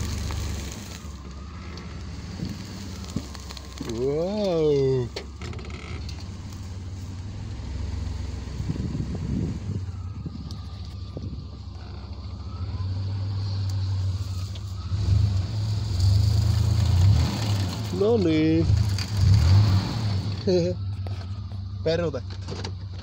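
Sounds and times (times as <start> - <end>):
driving through tall grass: 0.0 - 23.0
pickup truck engine running: 0.0 - 23.0.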